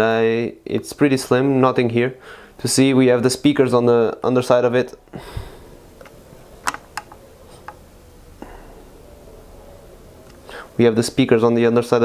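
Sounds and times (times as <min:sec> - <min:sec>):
smartphone handling clicks: 0:06.0 - 0:07.8.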